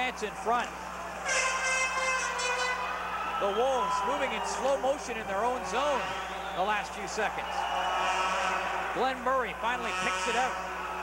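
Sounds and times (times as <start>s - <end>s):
sustained horn-like tone: 1.3s - 3.0s, 5.7s - 6.5s, 7.9s - 8.8s, 9.7s - 11.0s.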